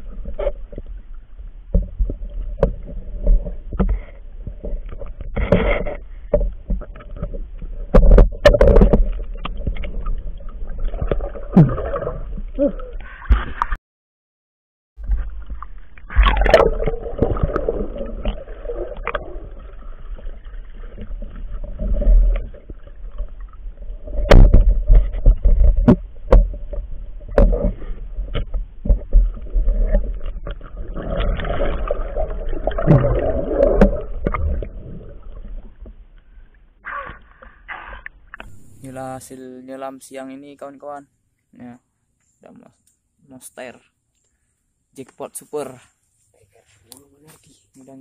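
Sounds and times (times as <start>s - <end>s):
water sloshing and gurgling: 0.0s - 13.8s, 15.0s - 39.5s
low rumble: 15.0s - 20.4s, 38.2s - 39.0s.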